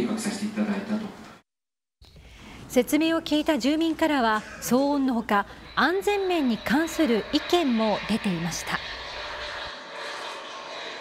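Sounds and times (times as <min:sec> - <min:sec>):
jet passing overhead: 0:05.2 - 0:11.0.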